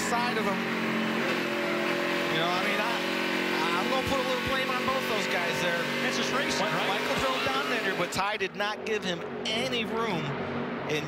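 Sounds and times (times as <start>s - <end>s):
race car engine at high revs: 0.0s - 11.0s.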